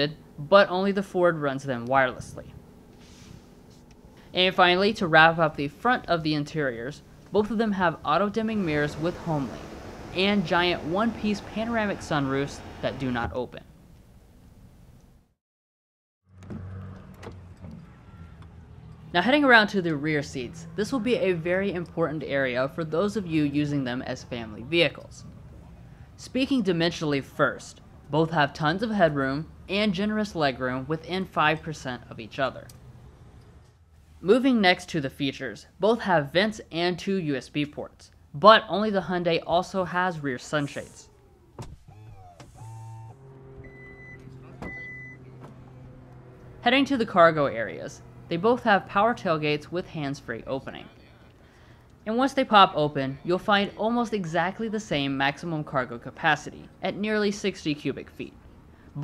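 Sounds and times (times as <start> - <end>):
falling whirr: 8.4 - 13.4, 40.4 - 46.3.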